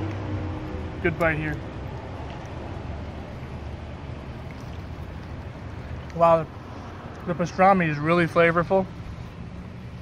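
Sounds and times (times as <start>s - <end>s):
low rumble of outdoor background noise: 0.0s - 10.0s.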